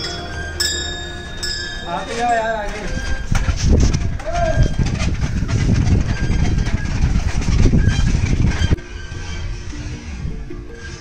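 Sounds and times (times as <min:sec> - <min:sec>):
prayer wheels rattling and clicking: 0:00.0 - 0:11.0.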